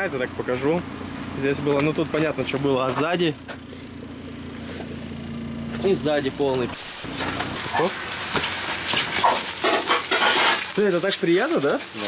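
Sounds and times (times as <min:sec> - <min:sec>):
plastic wrap crinkling: 0:06.8 - 0:12.0.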